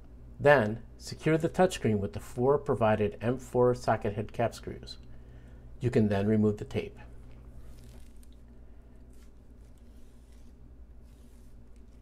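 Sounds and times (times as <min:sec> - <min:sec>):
low steady hum: 0:00.0 - 0:12.0
tape crinkling and rustling: 0:07.2 - 0:12.0.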